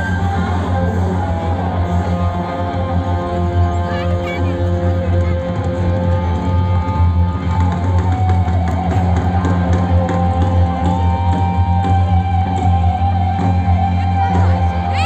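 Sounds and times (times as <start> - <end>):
live rock band music: 0.0 - 15.0.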